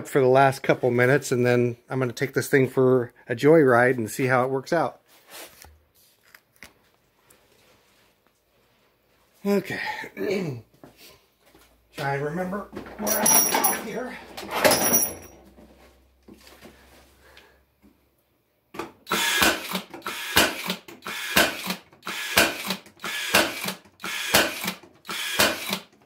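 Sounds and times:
faint handling sounds: 5.0 - 9.5
brad nailer firing into wood: 19.1 - 25.9.

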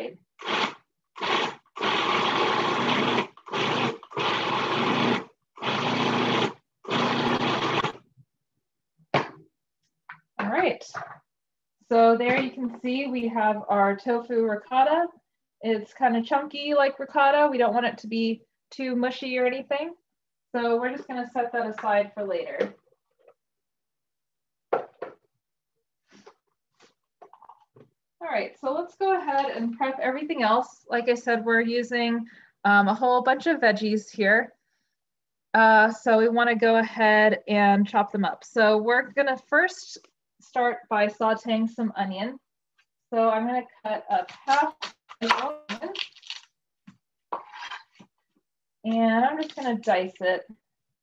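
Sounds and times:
food processor motor pulsing: 0.4 - 8.0.

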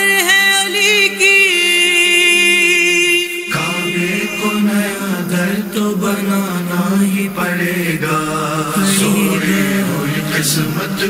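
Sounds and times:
man chanting a devotional song: 1.9 - 11.0.

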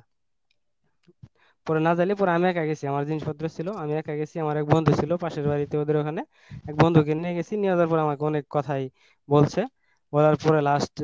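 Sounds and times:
man speaking: 1.7 - 11.0.

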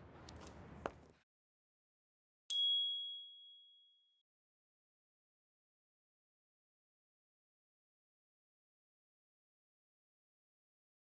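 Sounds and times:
bell-like electronic chime: 2.5 - 4.2.

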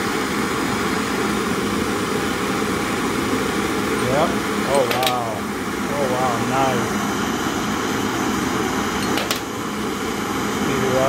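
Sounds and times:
gas torches rushing: 0.0 - 11.0.

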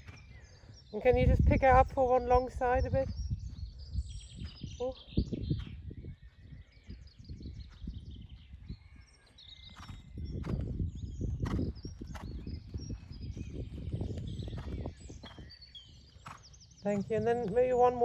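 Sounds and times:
birds singing: 0.0 - 18.0
hooves thudding on sand: 0.0 - 18.0.

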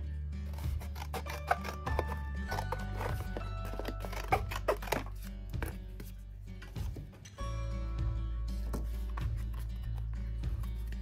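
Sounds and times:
background music: 0.0 - 11.0
scissors snipping chipboard: 0.4 - 5.2.

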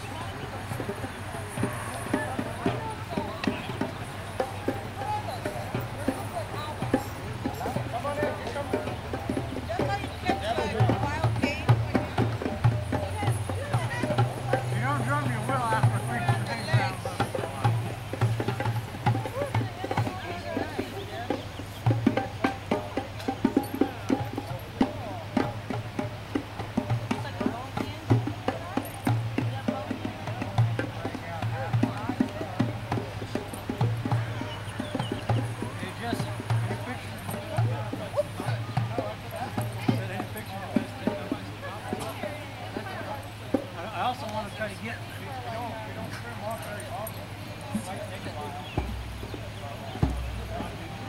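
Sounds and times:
hand drums played: 0.0 - 44.2, 44.8 - 51.0
people chatting: 0.0 - 51.0.

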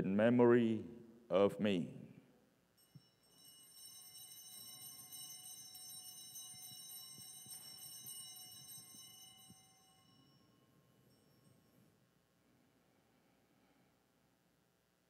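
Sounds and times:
altar bells ringing: 2.8 - 12.0.

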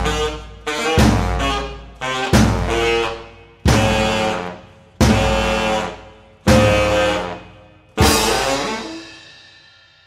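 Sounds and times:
jazz ensemble hits: 0.0 - 9.7.

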